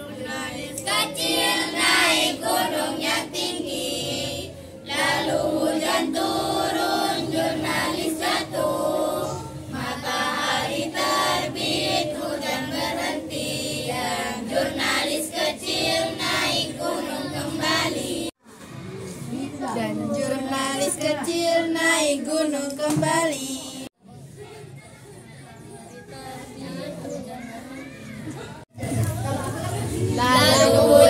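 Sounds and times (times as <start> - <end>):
girls singing in unison: 0.0 - 18.4, 20.0 - 23.9, 30.0 - 31.0.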